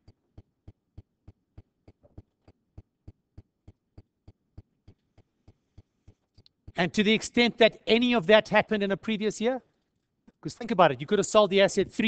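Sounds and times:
faint steady ticks: 0.0s - 6.9s.

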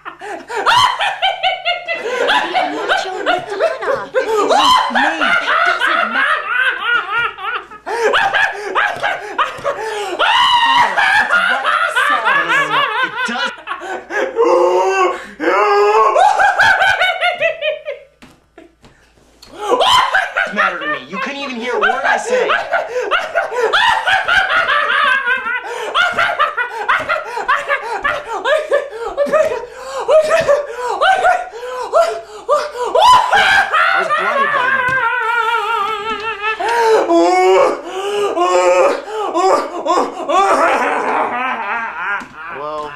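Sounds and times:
man laughing hard: 0.0s - 18.0s, 19.6s - 42.9s.

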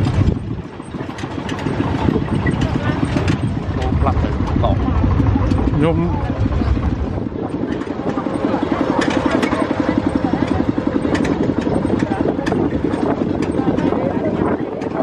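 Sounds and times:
tractor engine chugging: 0.0s - 15.0s
trailer rattling and clanking: 0.0s - 15.0s.

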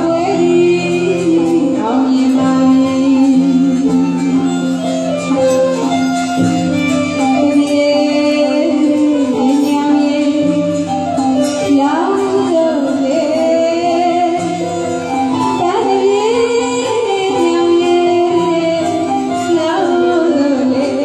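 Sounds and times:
violin: 0.0s - 21.0s
woman singing into a microphone: 0.0s - 21.0s.

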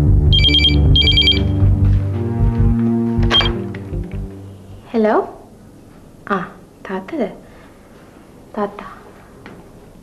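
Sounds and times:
background music with strings: 0.0s - 4.8s
telephone ringing: 0.3s - 1.6s, 3.3s - 3.6s.

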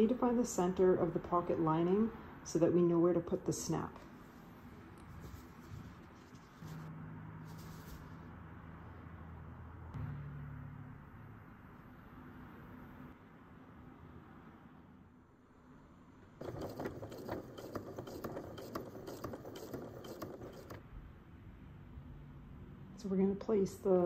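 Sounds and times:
sewing machine stitching: 16.4s - 20.8s.

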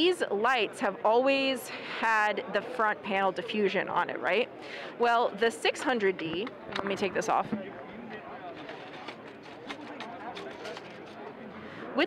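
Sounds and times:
crowd voices in hall: 0.0s - 12.0s.

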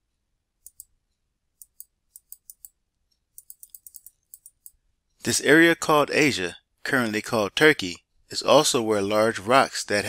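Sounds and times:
computer mouse clicks: 0.6s - 0.9s, 1.6s - 4.8s.

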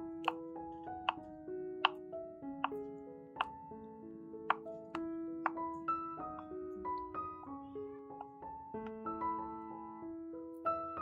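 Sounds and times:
soft piano music: 0.0s - 11.0s.

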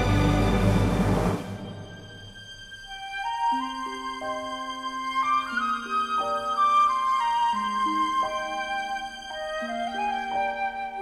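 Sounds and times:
quiet sustained notes: 0.0s - 3.2s
loud orchestral music: 0.0s - 3.7s.

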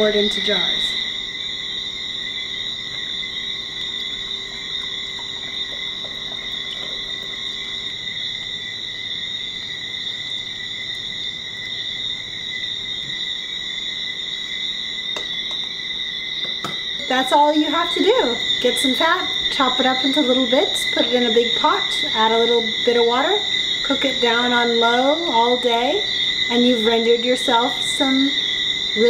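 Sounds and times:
night insects chirping: 0.0s - 29.0s.

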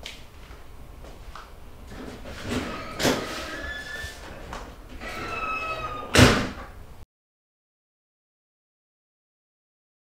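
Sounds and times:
door squeaking: 2.3s - 6.8s
door slamming: 2.5s - 3.8s, 5.0s - 6.8s.

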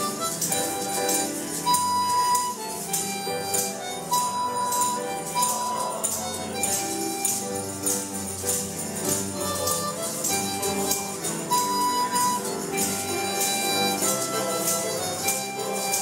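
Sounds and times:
band playing upbeat gospel song: 0.0s - 16.0s
tambourines jingling: 0.0s - 16.0s.

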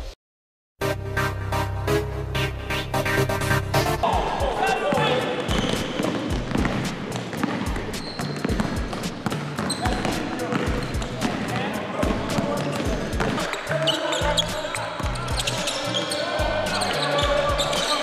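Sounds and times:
background music with steady beat: 0.8s - 18.0s
basketballs bouncing on wood floor: 4.9s - 11.4s, 12.0s - 13.5s.

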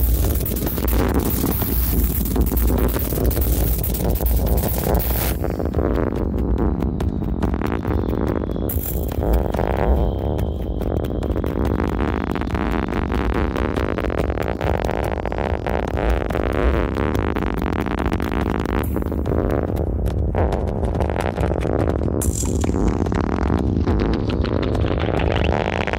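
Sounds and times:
noisy experimental electronic music: 0.0s - 25.9s.

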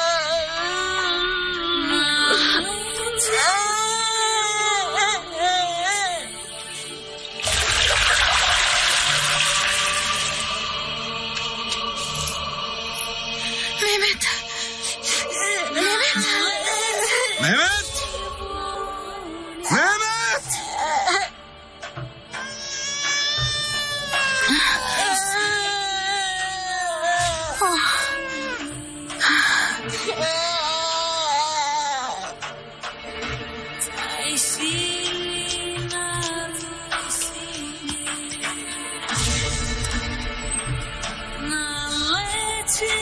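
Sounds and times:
music with long held notes: 0.0s - 43.0s
water churning and splashing: 7.3s - 10.8s
small child crying and wailing: 22.4s - 28.8s.

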